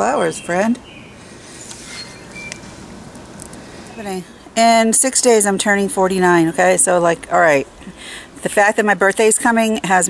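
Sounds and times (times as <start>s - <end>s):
low outdoor hiss: 0.0s - 10.0s
faint high chirp: 1.9s - 2.7s.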